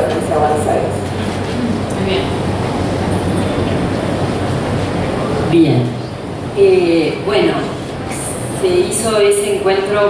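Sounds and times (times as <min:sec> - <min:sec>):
low electrical hum: 0:00.0 - 0:10.0
room rumble: 0:00.0 - 0:10.0.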